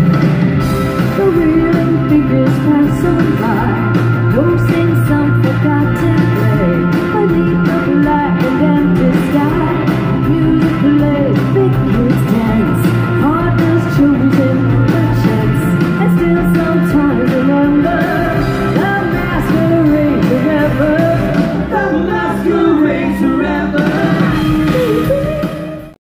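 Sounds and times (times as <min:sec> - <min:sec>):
live rock band playing: 0:00.0 - 0:26.0
woman singing: 0:01.0 - 0:26.0.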